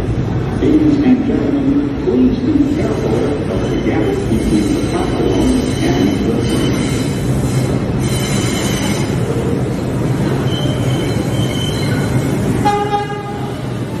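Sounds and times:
subway train rumbling on rails: 0.0 - 14.0
high wheel squealing: 3.5 - 9.2, 10.3 - 12.6
train horn: 12.6 - 13.6.

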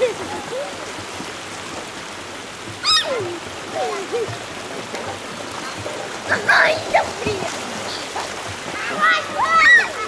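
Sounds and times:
river water rushing: 0.0 - 10.0
child squealing: 2.8 - 3.3, 9.1 - 10.0.

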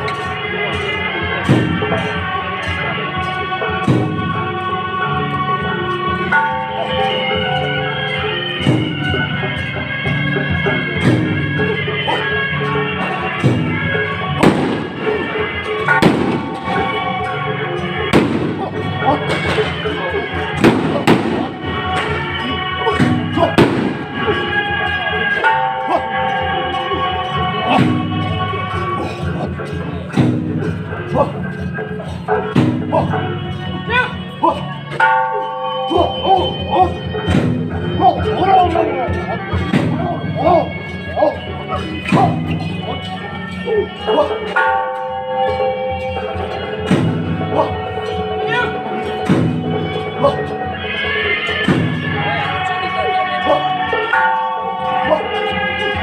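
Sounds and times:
held wind instrument notes: 0.0 - 56.0
sharp percussion strikes: 0.0 - 56.0.

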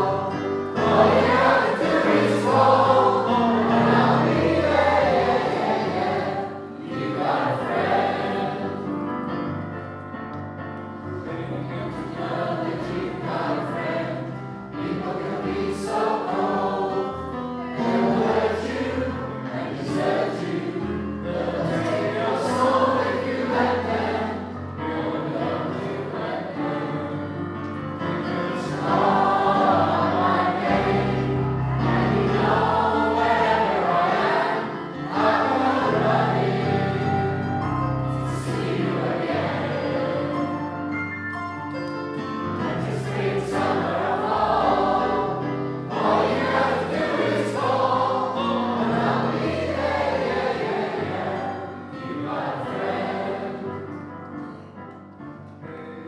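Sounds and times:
mixed choir singing: 0.0 - 9.2, 11.0 - 37.5, 38.1 - 40.9, 42.4 - 54.1.

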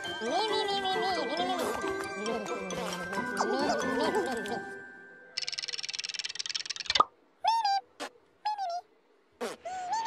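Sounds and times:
rapid fluttering trill: 5.4 - 7.1.

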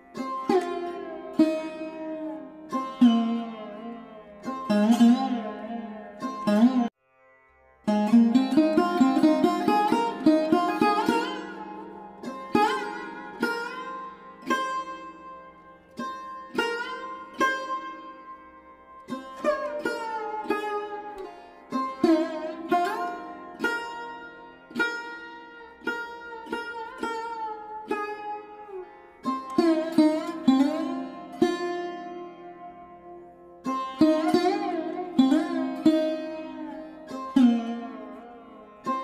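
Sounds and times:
plucked string instrument melody: 0.0 - 39.0.

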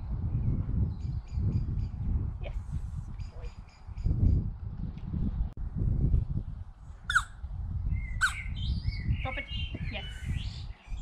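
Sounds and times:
steady low rumble: 0.0 - 11.0
small birds chirping: 7.1 - 11.0.

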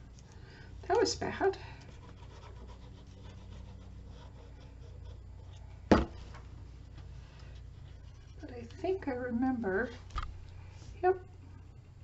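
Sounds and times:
hand rubbing paper: 1.6 - 5.8.

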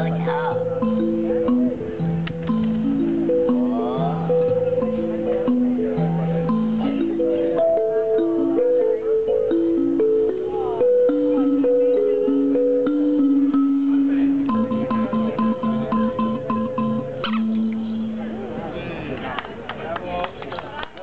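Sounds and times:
toy instrument melody: 0.0 - 18.8.

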